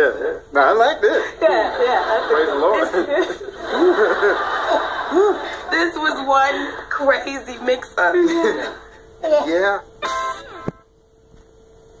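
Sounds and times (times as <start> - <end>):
faint steady hum: 0.0 - 12.0
woman laughing on tv: 1.2 - 5.8.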